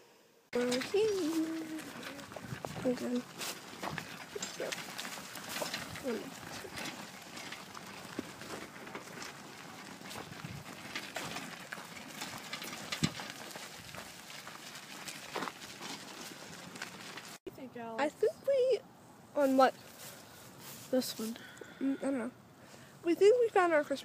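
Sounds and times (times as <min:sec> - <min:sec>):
footsteps in fallen leaves: 0:00.6 - 0:17.4, 0:19.4 - 0:21.5.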